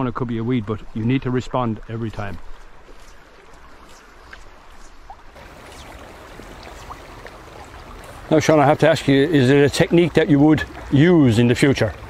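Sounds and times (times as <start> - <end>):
river water rushing: 5.4 - 12.0.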